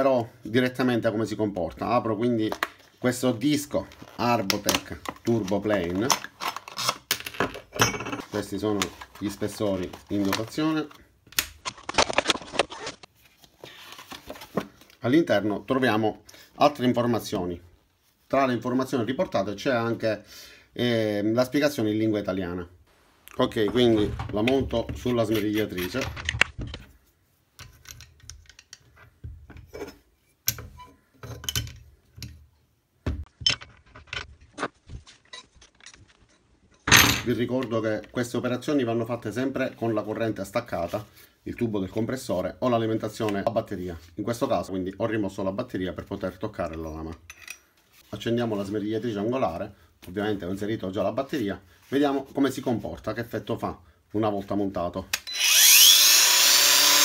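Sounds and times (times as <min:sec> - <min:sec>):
paper rustling: 0:11.6 - 0:14.9.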